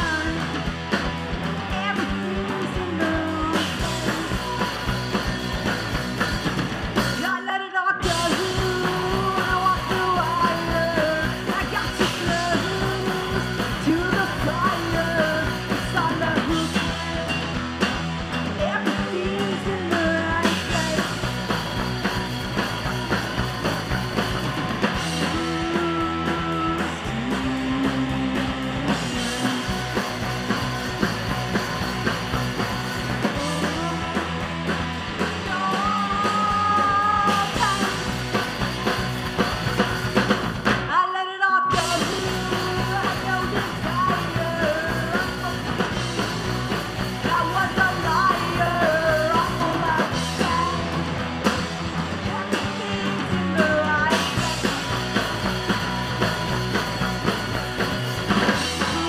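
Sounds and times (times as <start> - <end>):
woman singing lead vocal: 0.0 - 0.6, 1.7 - 4.7, 7.2 - 17.6, 18.5 - 21.3, 25.2 - 30.0, 33.3 - 34.6, 35.3 - 38.2, 40.9 - 46.0, 47.0 - 51.1, 52.1 - 55.0, 58.5 - 59.0
drum kit: 0.0 - 41.0, 41.6 - 59.0
bass guitar: 0.0 - 59.0
electric guitar: 0.0 - 59.0.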